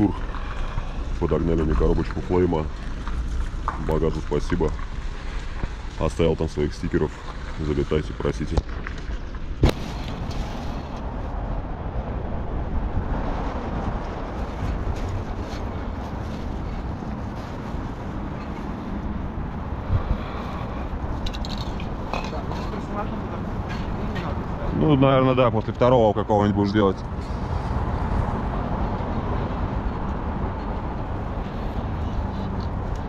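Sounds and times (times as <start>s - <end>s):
outdoor rumble and hiss: 0.0s - 33.0s.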